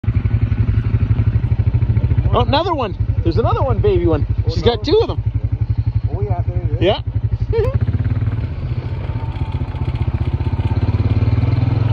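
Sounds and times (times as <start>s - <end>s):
atv engine idling: 0.0s - 11.9s.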